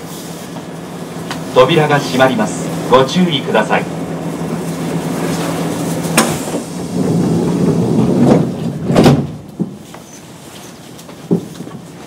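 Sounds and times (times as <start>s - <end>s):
steady low hum: 0.0s - 10.5s
train doors closing: 0.0s - 12.0s
doors thumping shut: 8.2s - 9.8s.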